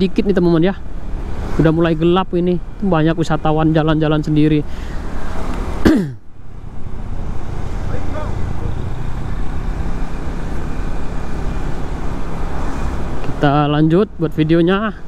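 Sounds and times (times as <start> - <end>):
motor scooter engine and road noise: 0.0 - 15.0.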